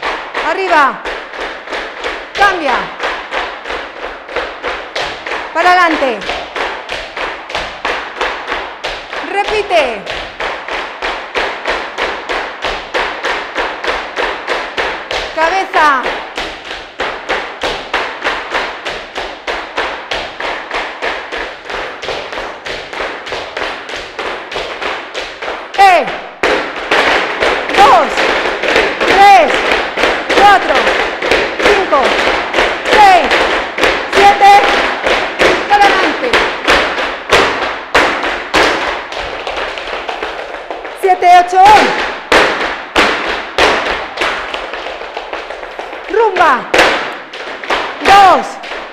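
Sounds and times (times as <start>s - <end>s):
dance shoes stamping on wooden floor: 0.0s - 48.9s.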